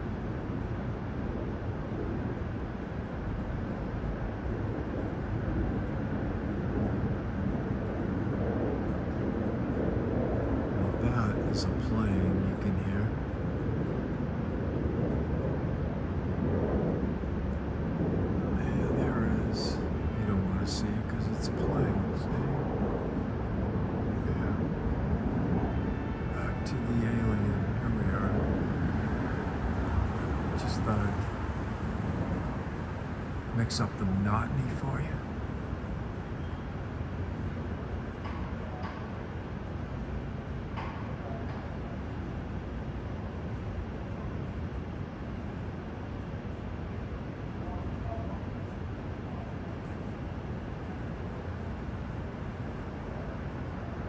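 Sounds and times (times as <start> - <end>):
low rumble of traffic: 0.0 - 54.0
indistinct voices talking: 10.8 - 12.9, 26.4 - 28.5, 30.5 - 31.2, 33.5 - 35.2.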